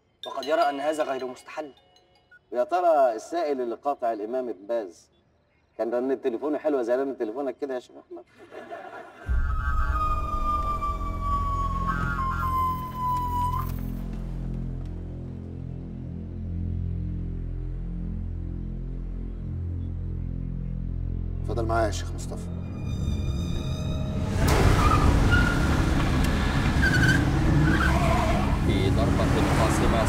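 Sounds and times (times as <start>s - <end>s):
high whistle-like tone sinking: 9.3s - 14.0s
tyre squeals: 10.1s - 14.2s, 22.9s - 28.7s
cars driving fast: 24.2s - 30.0s.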